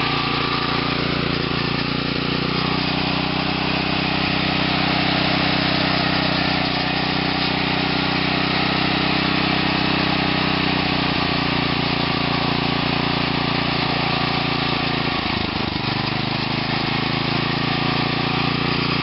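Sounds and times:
small engine idling: 0:00.0 - 0:19.0.

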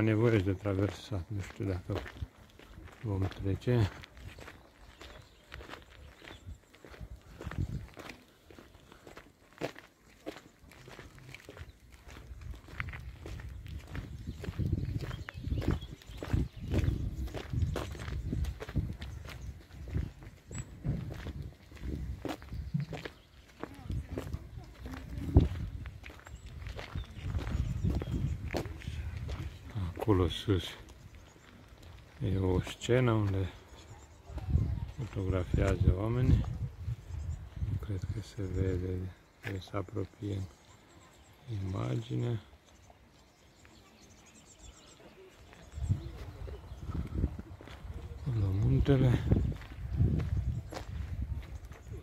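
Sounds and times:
footsteps on gravel: 0:00.1 - 0:52.0.

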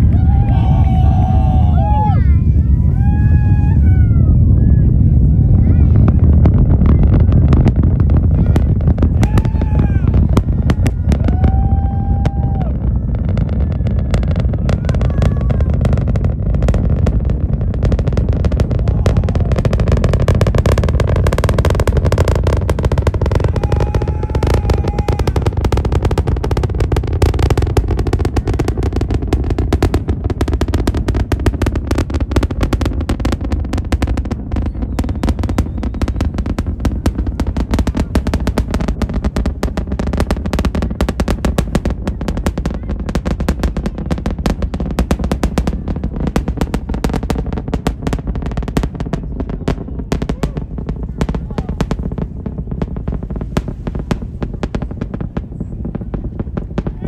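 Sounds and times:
rocket engines crackling rumble: 0:00.0 - 0:57.0.

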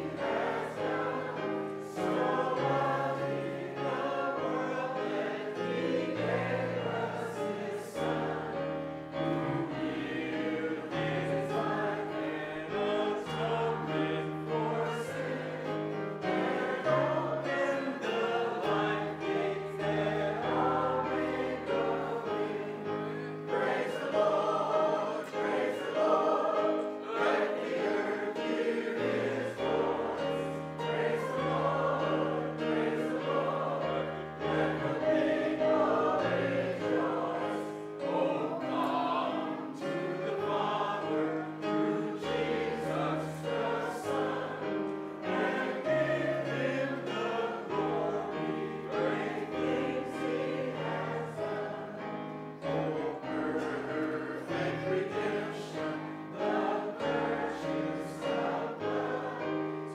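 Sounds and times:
congregation singing a hymn: 0:00.0 - 0:59.9
keyboard accompaniment: 0:00.0 - 0:59.9.

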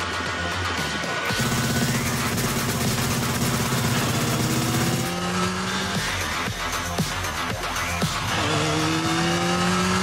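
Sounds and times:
motorcycle engine running hard: 0:00.0 - 0:10.0
dramatic music: 0:01.2 - 0:10.0
sharp hits: 0:01.3 - 0:05.4.

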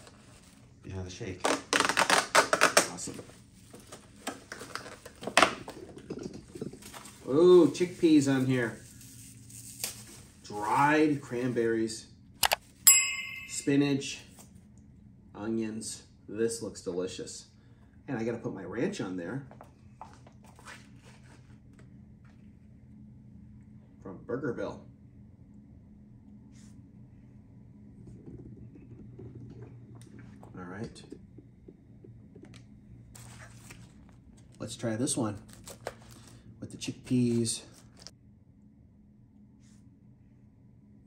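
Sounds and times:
low steady hum: 0:00.0 - 0:41.0
packaging crinkle: 0:01.4 - 0:05.8, 0:35.2 - 0:36.4
food packaging rustling and tapping: 0:03.6 - 0:07.2.

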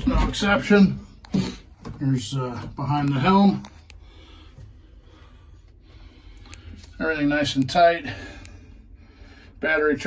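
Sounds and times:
faint steady rumble: 0:00.0 - 0:10.0.

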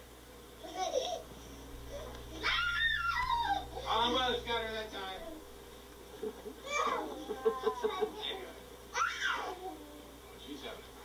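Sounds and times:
toddler squealing: 0:02.4 - 0:03.7, 0:09.0 - 0:09.6.

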